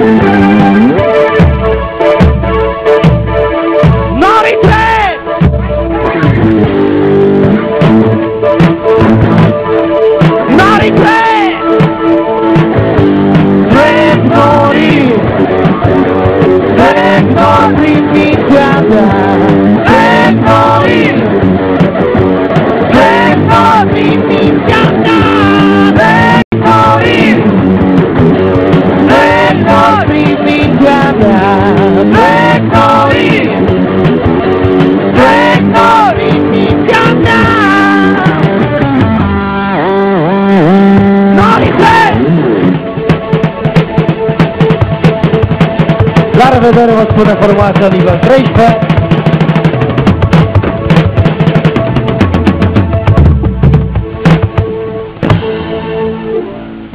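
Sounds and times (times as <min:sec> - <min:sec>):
lead guitar bending pitch: 0:00.0 - 0:48.2, 0:48.8 - 0:56.9
loud live rock band: 0:00.0 - 0:56.9.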